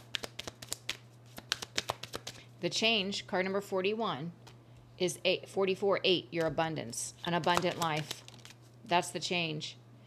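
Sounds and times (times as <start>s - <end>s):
cards being shuffled by hand: 0.0s - 2.4s, 7.2s - 8.7s.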